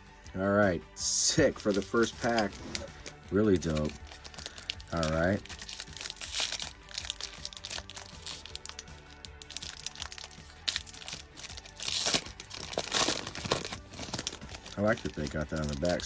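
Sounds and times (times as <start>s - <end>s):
foil wrapper tearing and crinkling: 1.6s - 16.0s.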